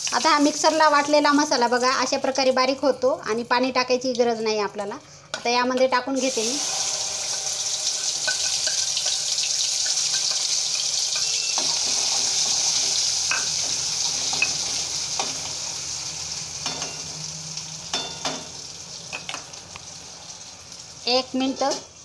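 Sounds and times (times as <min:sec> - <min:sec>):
paste sizzling in hot oil: 0:06.2 - 0:22.0.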